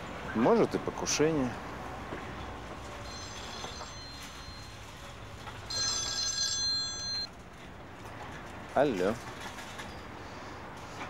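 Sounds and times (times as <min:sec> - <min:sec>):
mobile phone ringtone: 0:03.0 - 0:07.3.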